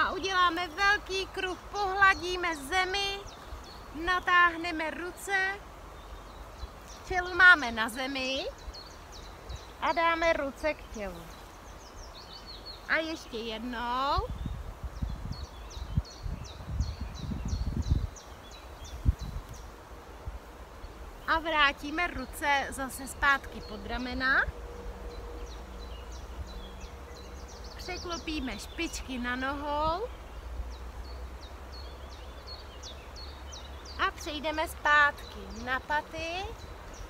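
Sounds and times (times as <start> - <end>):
songbird chirping: 0.0 - 37.0
low rumbling noise: 14.2 - 34.0.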